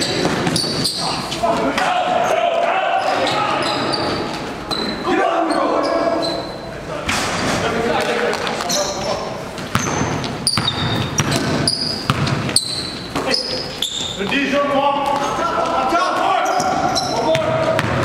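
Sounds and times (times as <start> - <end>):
sneaker squeaks: 0.0 - 1.4, 3.0 - 6.7, 8.6 - 18.0
people shouting: 1.0 - 4.1, 5.0 - 6.2
basketball bouncing: 9.6 - 13.3, 16.6 - 18.0.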